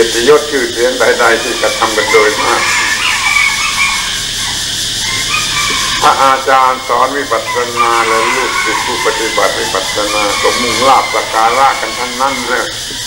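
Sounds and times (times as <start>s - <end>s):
man talking: 0.0s - 2.9s, 6.0s - 12.9s
recording hiss: 0.0s - 13.0s.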